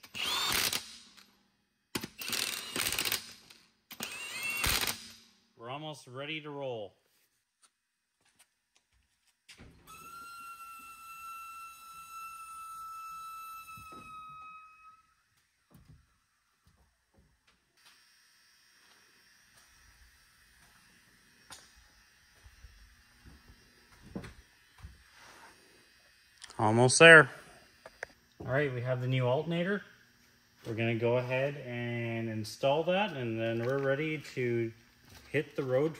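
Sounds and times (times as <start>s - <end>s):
small motor whining: 0.0s - 1.0s, 2.1s - 5.1s, 9.7s - 15.7s.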